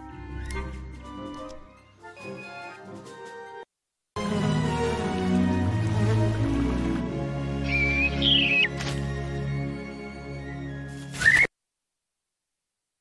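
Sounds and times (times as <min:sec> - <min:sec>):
orchestral film music: 0:00.0 - 0:11.2
whistling bird chirp: 0:07.6 - 0:08.8, 0:11.2 - 0:11.5
sharp rising chirp: 0:07.7 - 0:08.8.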